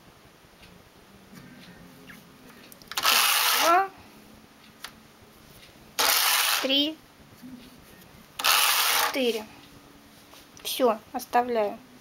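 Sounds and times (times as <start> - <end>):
knitting machine carriage sweeping: 3.0 - 3.8, 6.0 - 6.8, 8.4 - 9.5.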